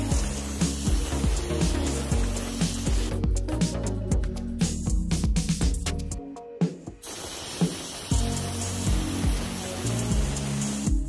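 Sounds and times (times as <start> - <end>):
gas hissing from nozzle: 0.0 - 3.2, 7.0 - 11.0
background music: 0.0 - 11.0.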